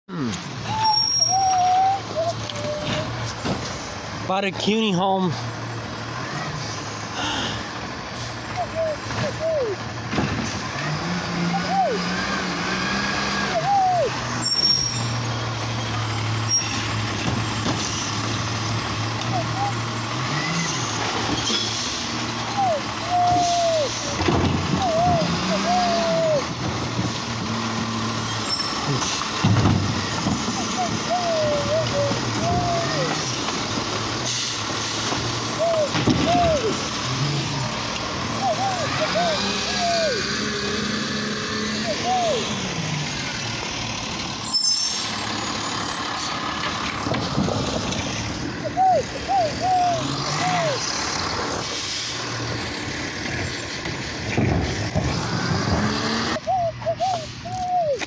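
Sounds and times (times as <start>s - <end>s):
garbage truck diesel engine revving: 0.1s - 58.0s
sharp knocks and hisses: 34.2s - 36.4s, 53.3s - 56.0s.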